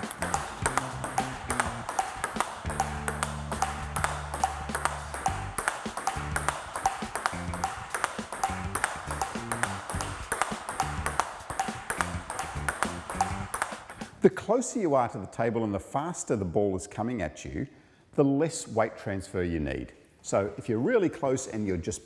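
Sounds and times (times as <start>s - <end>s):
background music with bass: 0.0s - 13.6s
table tennis ball clicking: 0.0s - 14.1s.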